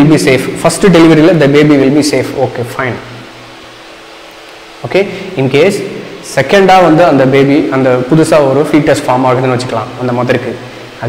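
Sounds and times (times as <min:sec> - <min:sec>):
man speaking: 0:00.0 - 0:03.2, 0:04.8 - 0:11.0
low fan-like room hum: 0:00.0 - 0:11.0.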